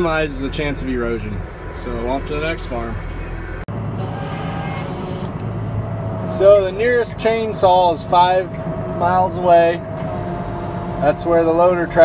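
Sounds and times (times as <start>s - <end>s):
tractor engine droning: 0.0s - 12.0s.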